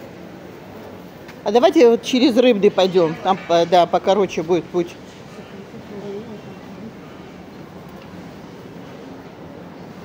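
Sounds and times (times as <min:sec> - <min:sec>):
indoor market hall hum: 0:00.0 - 0:10.0.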